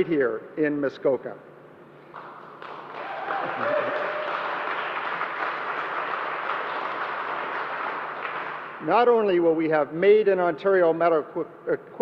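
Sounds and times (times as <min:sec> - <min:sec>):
small crowd applauding: 0:02.1 - 0:08.8.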